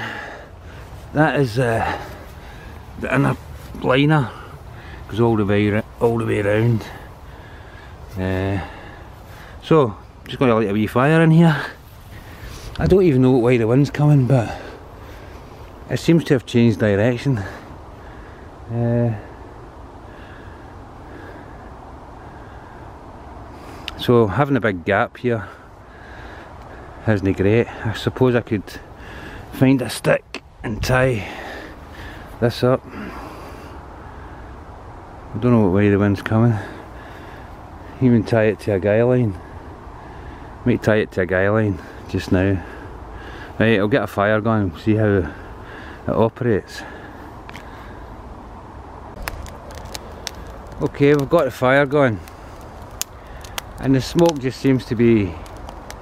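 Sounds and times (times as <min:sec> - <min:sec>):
breeze rumbling on microphone: 0:44.4 - 0:56.0
faint clicks: 0:49.2 - 0:51.4, 0:52.2 - 0:54.4.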